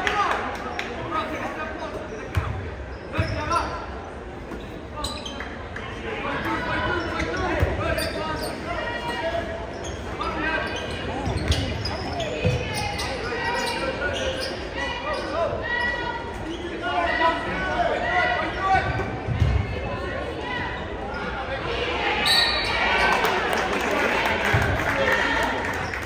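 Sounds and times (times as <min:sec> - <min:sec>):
voices of players and spectators: 0:00.0 - 0:26.0.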